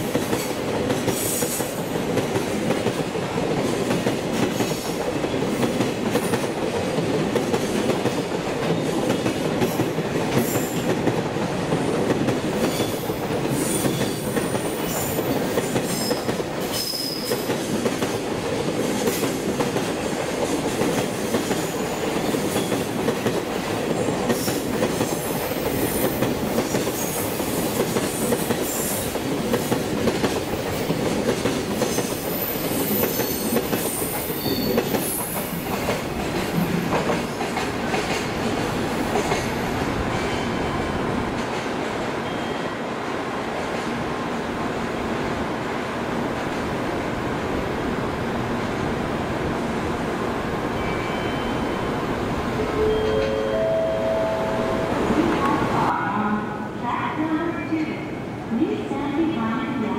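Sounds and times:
train wheels rumbling on rails: 0.0s - 53.6s.

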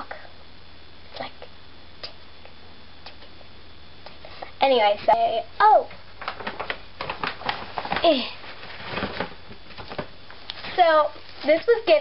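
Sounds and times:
plastic packaging clicks and rustles: 6.1s - 11.6s.

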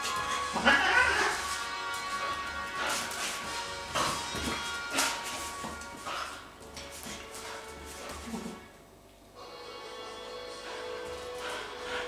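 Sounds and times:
background music: 0.0s - 8.8s, 9.4s - 12.0s
cat yowling: 0.6s - 1.4s.

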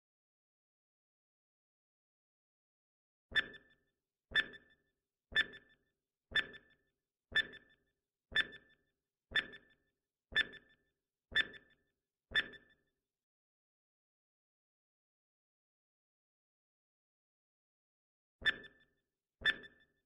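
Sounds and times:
countdown timer ticks: 3.3s - 12.7s, 18.4s - 18.8s, 19.4s - 19.8s.

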